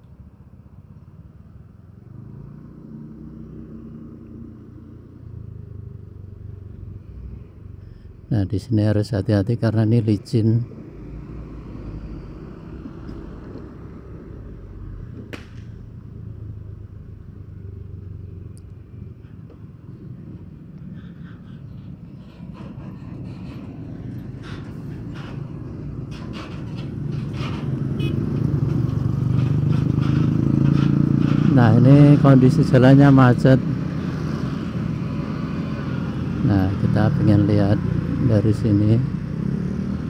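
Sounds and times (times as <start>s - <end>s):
motorcycle engine and road noise: 0.0s - 40.0s
slow traffic: 0.0s - 40.0s.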